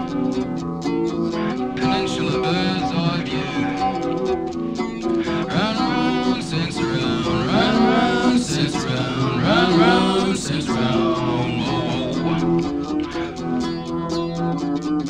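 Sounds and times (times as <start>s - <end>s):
rock band music: 0.0s - 15.0s
sliding guitar pitches: 0.0s - 15.0s.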